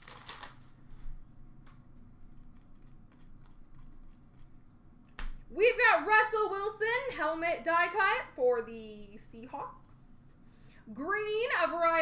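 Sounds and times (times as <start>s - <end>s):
cards clicking: 0.0s - 0.6s
trading cards rustling: 0.0s - 1.0s.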